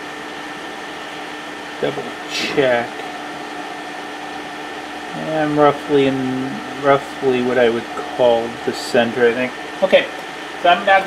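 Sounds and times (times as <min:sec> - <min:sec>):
ventilation fan whirring hum: 0:00.0 - 0:11.0.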